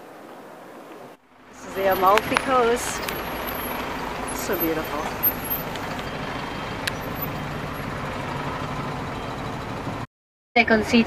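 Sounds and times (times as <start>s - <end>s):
road noise: 0.0s - 11.0s
large vehicle engine rumble: 1.2s - 11.0s.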